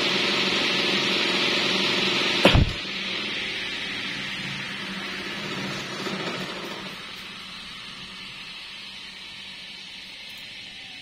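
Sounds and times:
fans rushing air: 0:00.0 - 0:11.0
low motor hum: 0:00.0 - 0:11.0
steady hiss of coasting blades: 0:02.9 - 0:11.0.

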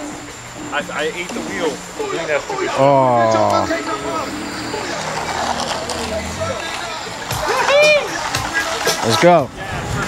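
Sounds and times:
electric boards rolling: 0:00.0 - 0:10.0
person whooping: 0:07.4 - 0:08.2.

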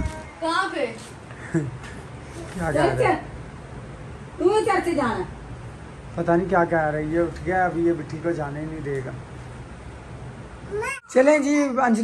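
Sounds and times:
small child crying: 0:10.7 - 0:11.2.

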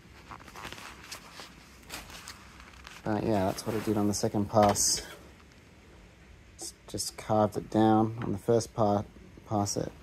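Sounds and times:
soft taps and rustles: 0:00.1 - 0:05.6.

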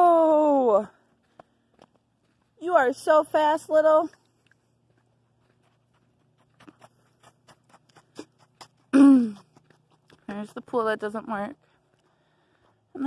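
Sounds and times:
footsteps on sandy dirt: 0:00.2 - 0:13.0.

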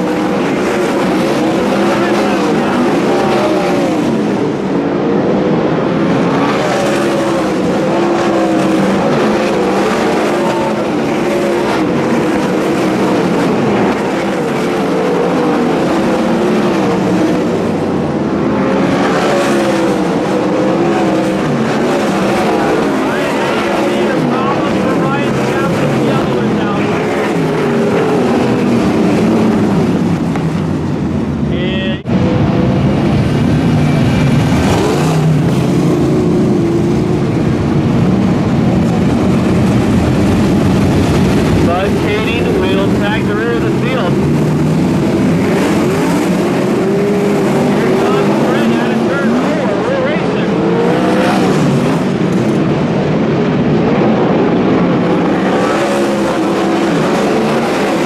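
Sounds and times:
race car engines revving: 0:00.0 - 0:58.0.

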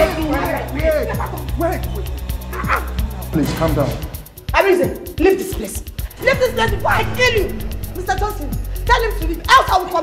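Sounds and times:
background music with low bass: 0:05.6 - 0:10.0.

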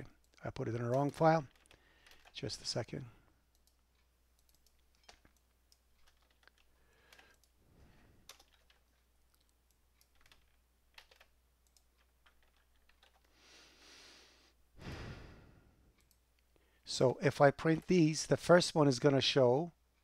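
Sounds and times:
keyboard and mouse clicks: 0:00.2 - 0:02.5, 0:03.5 - 0:07.6, 0:08.2 - 0:13.3, 0:16.0 - 0:16.5.

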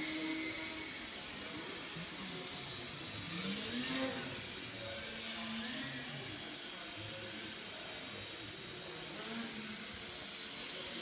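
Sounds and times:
rc plane motor whining: 0:00.0 - 0:11.0.

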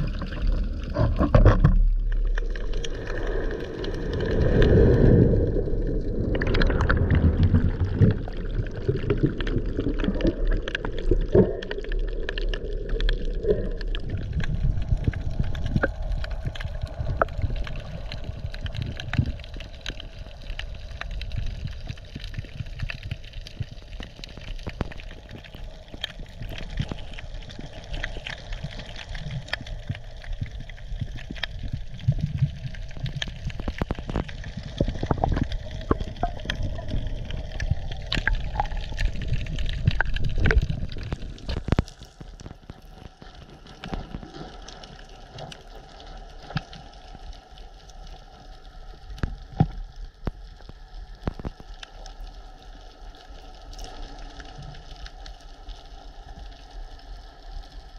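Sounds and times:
sharp underwater clicks and crackles: 0:00.0 - 0:57.9
water gurgling underwater: 0:00.0 - 0:57.9.

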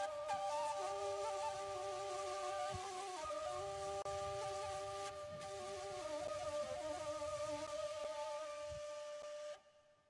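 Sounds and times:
wooden flute melody: 0:00.0 - 0:10.0.

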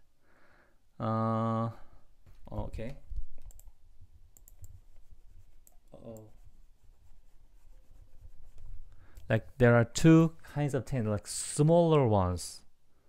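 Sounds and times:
light computer clicks: 0:02.8 - 0:03.7.

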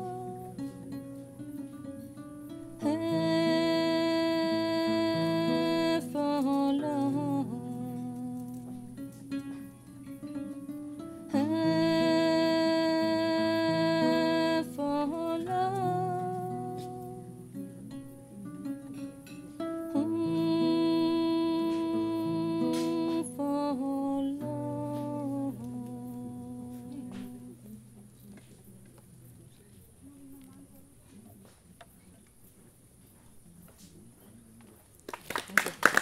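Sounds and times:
woman humming: 0:00.0 - 0:01.3, 0:02.8 - 0:09.7, 0:11.3 - 0:17.7, 0:19.9 - 0:28.4.

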